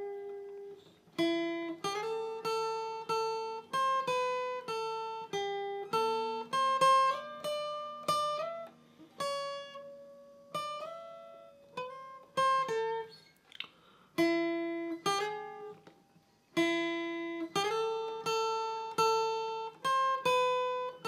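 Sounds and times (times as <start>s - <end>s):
acoustic guitar picked melody: 0.0s - 21.0s.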